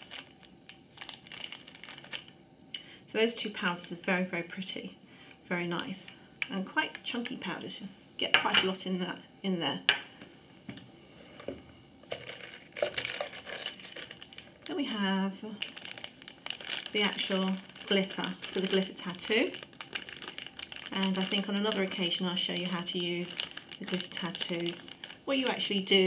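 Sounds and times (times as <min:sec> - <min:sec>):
plastic bag crinkling: 0:00.0 - 0:02.4, 0:12.0 - 0:26.0.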